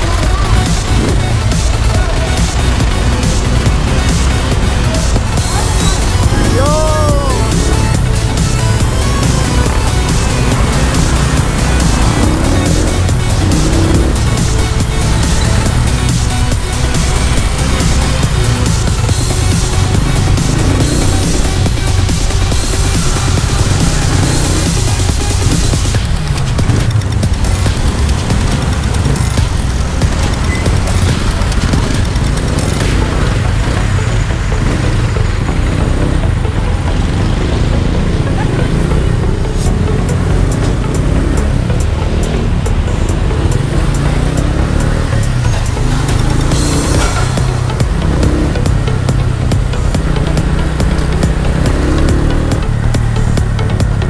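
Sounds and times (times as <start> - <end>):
background music: 0.0 - 54.0
motorcycle engine and road rumble: 0.0 - 54.0.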